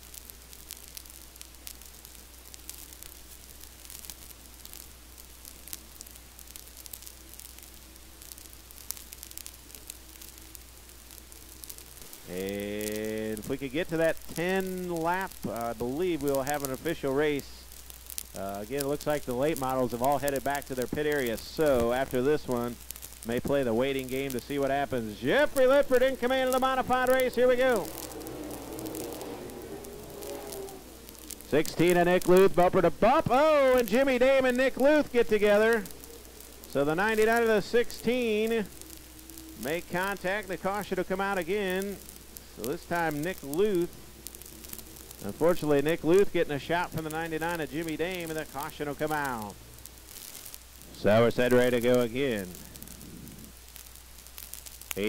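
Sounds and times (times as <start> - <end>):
faint crackling hiss: 0.0 - 55.0
low electrical hum: 0.0 - 55.0
distant race car engines droning: 24.5 - 48.2.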